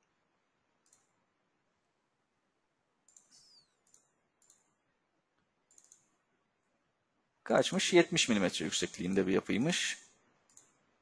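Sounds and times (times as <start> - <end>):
computer mouse clicks: 0.8 - 1.2, 3.0 - 4.8, 5.4 - 6.2, 10.4 - 10.8.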